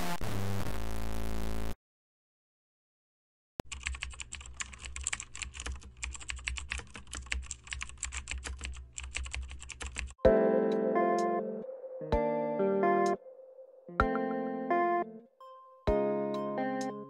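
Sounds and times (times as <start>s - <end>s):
computer keyboard typing: 3.6s - 10.2s
guitar notes: 10.2s - 15.3s, 15.9s - 17.0s.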